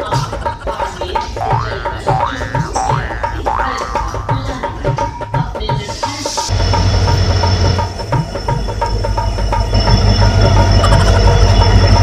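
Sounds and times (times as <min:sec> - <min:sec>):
train rumbling: 0:05.8 - 0:12.0.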